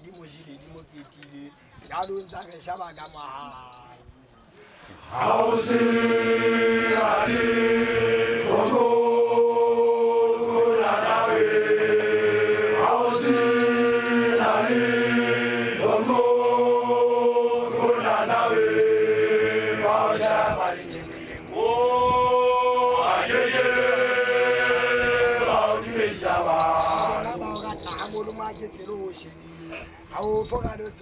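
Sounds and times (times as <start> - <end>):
group chanting in unison: 5.0 - 27.6.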